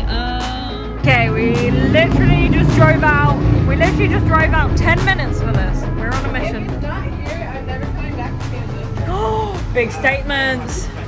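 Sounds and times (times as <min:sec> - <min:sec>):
background music: 0:00.0 - 0:11.0
indistinct voices: 0:00.0 - 0:11.0
steady low rumble: 0:00.0 - 0:11.0.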